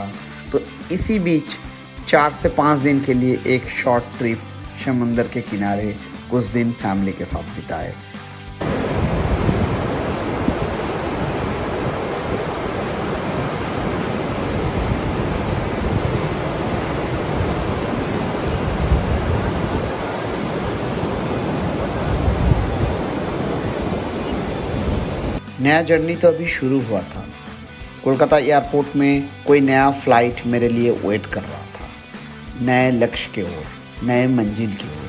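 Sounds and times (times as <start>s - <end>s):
ocean waves breaking: 8.0s - 30.4s.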